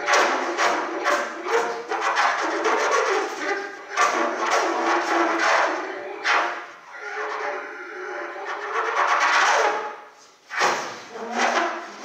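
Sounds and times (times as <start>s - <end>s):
air noise through trumpet: 0.0s - 12.0s.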